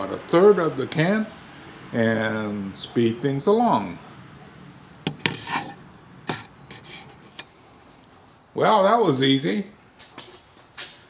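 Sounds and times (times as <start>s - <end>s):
scrapes on plastic pot: 5.1s - 7.5s.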